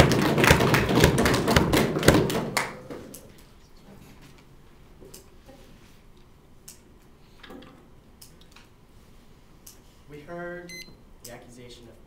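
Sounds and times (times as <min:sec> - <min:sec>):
high electronic beep: 0:10.7 - 0:10.9.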